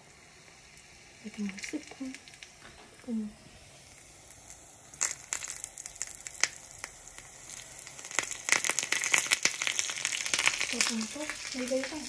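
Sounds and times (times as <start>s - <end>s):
hot oil sizzling in a frying pan: 0.0s - 12.0s.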